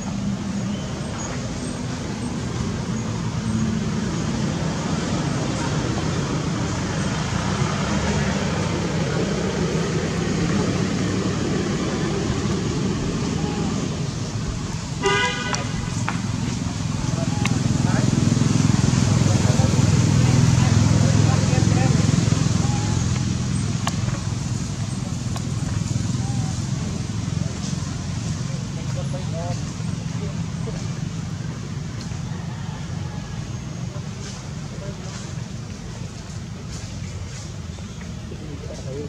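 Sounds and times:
distant voices: 0.0 - 39.0
road traffic: 0.0 - 39.0
vehicle horn toot: 15.0 - 16.0.

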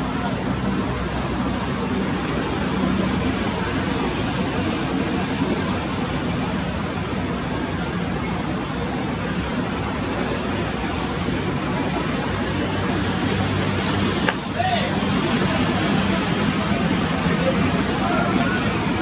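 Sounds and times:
ballpark background noise: 0.0 - 19.0.

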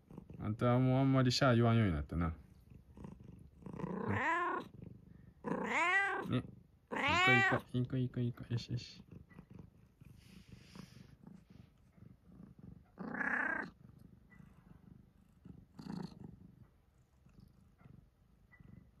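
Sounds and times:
cat purring: 0.0 - 19.0
cat vocal sound: 2.5 - 7.8, 9.0 - 16.5.

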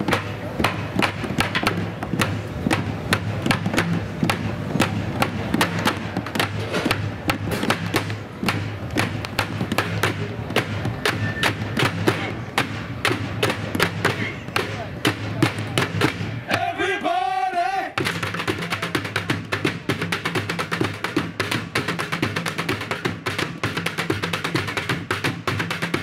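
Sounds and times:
drumsticks beating plastic and metal: 0.0 - 16.8.

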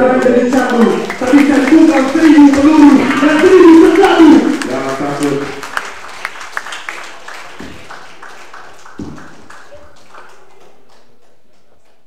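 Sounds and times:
audience clapping: 0.0 - 12.0.

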